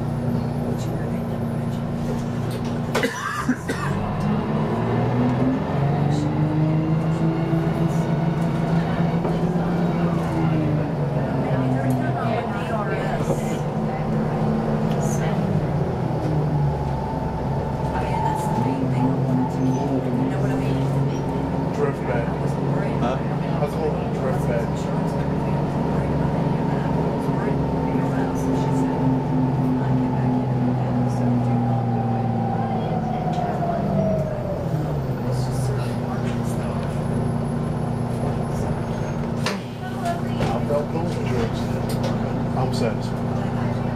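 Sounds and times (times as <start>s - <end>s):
bus diesel engine droning: 0.0s - 43.9s.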